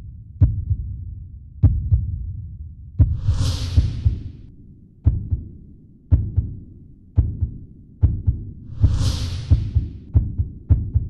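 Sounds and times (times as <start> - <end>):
suspense music heartbeat thumps: 0.0 - 11.0
whoosh: 3.0 - 4.6, 8.7 - 10.0.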